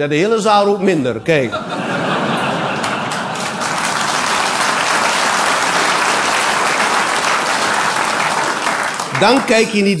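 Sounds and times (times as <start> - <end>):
audience applauding: 2.2 - 10.0.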